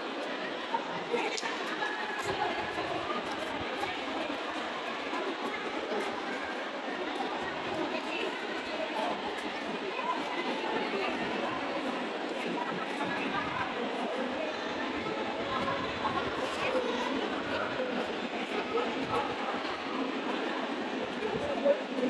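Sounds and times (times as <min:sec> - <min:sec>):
crowd chatter in a hall: 0:00.0 - 0:22.0.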